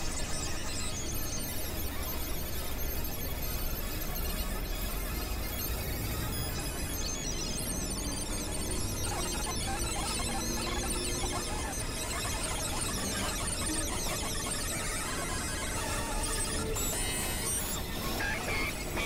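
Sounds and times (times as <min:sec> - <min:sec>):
electronic noise music: 0:00.0 - 0:19.0.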